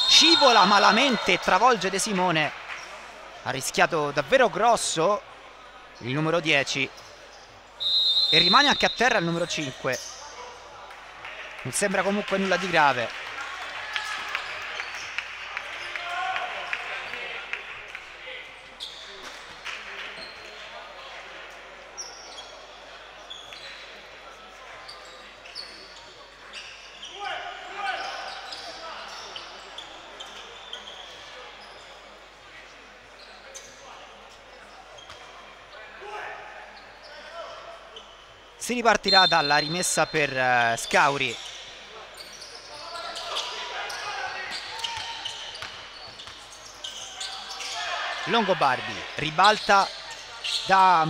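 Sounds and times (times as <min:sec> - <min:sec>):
echoing voices: 0:00.0 - 0:05.3.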